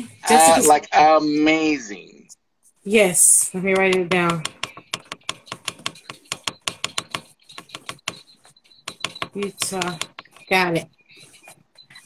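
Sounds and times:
keyboard typing: 3.6 - 12.0.

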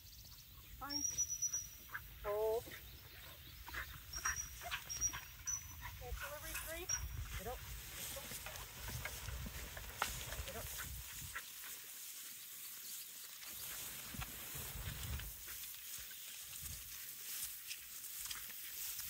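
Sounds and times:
rustling in tall grass: 1.4 - 19.0.

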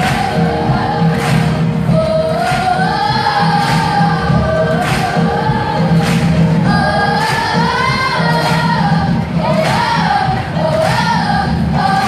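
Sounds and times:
children's choir singing: 0.0 - 12.0
drum kit beat: 0.0 - 12.0.

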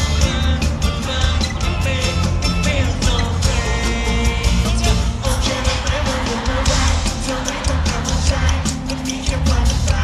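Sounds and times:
group singing: 0.0 - 10.0
heavy bass beat: 0.0 - 10.0.

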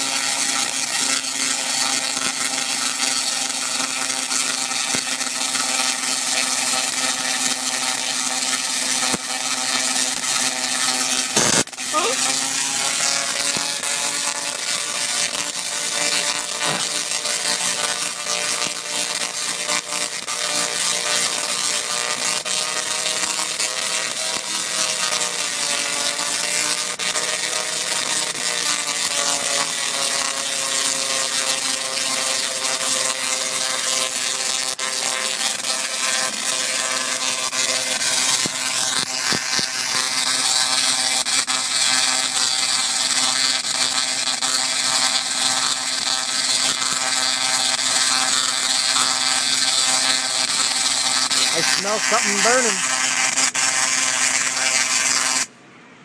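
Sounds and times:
tesla coil buzzing: 0.0 - 55.5.

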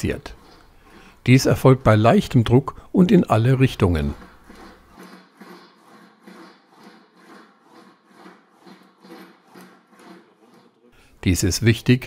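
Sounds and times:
metal panel rolling rub: 0.0 - 2.5, 3.4 - 11.0.

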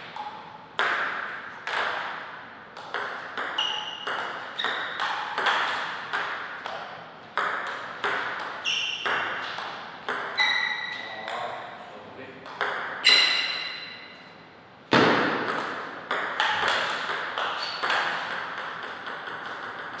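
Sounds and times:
table tennis ball clicking: 15.5 - 20.0.

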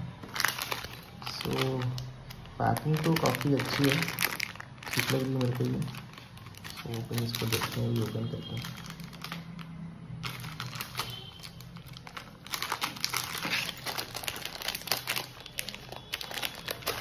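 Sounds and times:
plastic pouch crinkling: 0.2 - 17.0.

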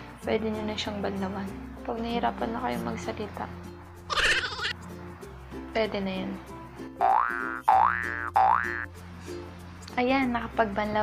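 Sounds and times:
soft background music: 0.0 - 11.0
cartoon boing effects: 7.0 - 8.9.

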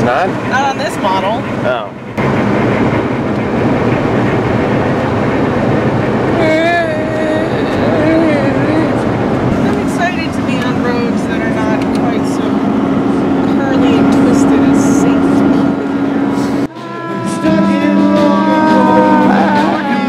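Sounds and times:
road noise inside vehicle: 0.0 - 20.0
faint voices: 6.4 - 20.0
music with held notes: 16.7 - 20.0.

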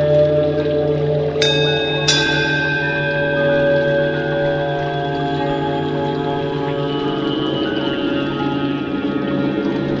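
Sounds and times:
ambient drone of layered tones: 0.0 - 10.0
bright chime strikes: 1.4 - 7.6.

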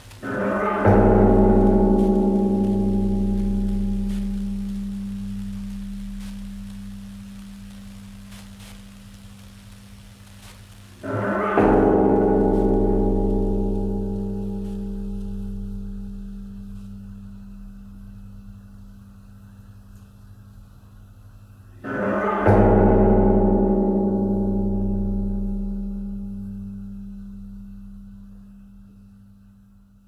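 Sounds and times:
hard hit on metal: 0.2 - 7.0, 11.0 - 16.8
metal cauldron ringing like a gong: 0.2 - 7.4, 11.0 - 19.3, 21.8 - 29.5.

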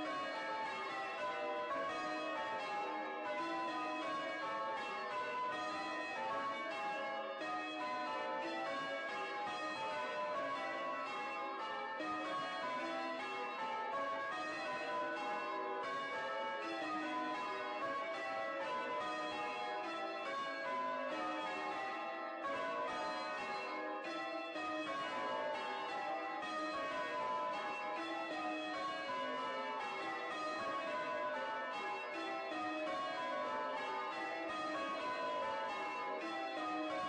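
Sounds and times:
church bells change ringing: 0.0 - 37.0.

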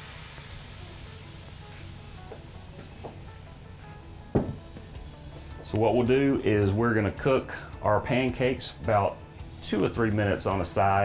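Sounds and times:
batter sizzling on a griddle: 0.0 - 11.0
faint background music: 0.0 - 11.0.

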